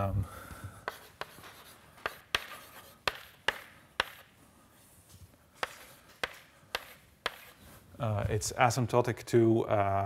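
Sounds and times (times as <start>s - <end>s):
chalk scratching: 0.8s - 4.4s, 5.6s - 7.8s
chalk tapping on blackboard: 0.8s - 4.4s, 5.6s - 7.6s.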